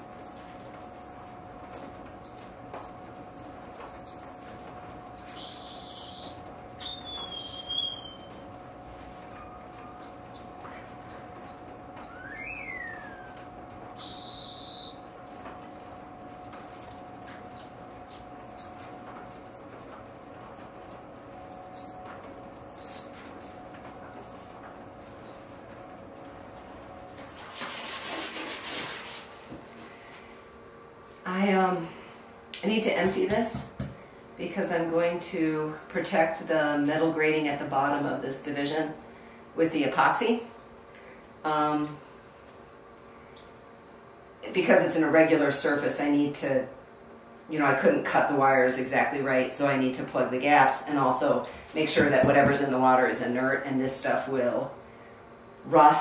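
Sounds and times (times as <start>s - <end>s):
faint steady hum: 0.0s - 56.0s
finches chirping: 0.2s - 8.4s, 9.4s - 13.4s, 14.0s - 15.6s, 16.5s - 18.8s, 19.5s - 19.7s, 20.5s - 20.8s, 21.4s - 25.8s.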